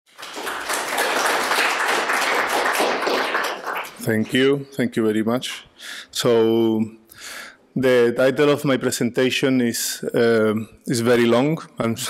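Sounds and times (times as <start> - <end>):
audience applauding: 0.1 - 4.6.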